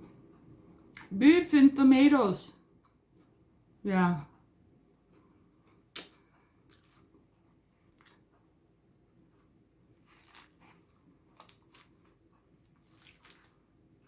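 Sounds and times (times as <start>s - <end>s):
quiet chewing: 2.7s - 3.6s, 4.3s - 14.0s.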